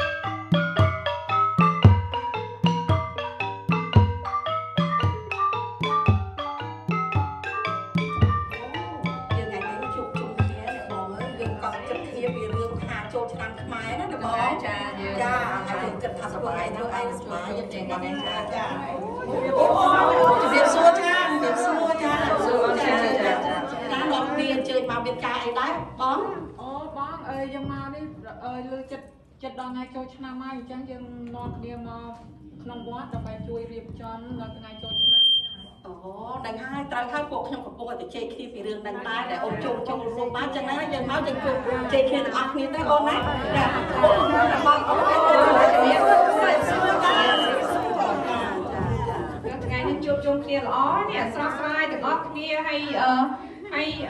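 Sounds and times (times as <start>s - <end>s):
women chattering: 8.5s - 27.5s, 38.1s - 54.0s.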